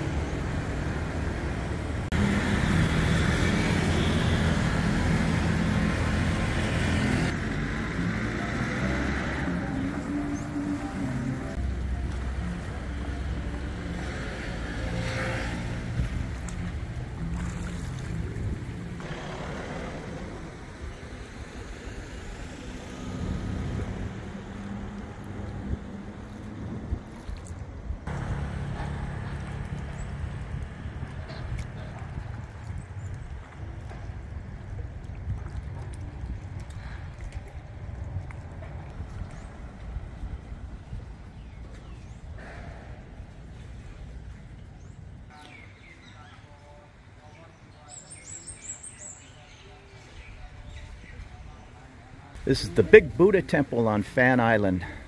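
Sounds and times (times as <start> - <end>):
road traffic: 0.0 - 35.0, 35.6 - 55.0
outdoor background noise: 0.0 - 55.0.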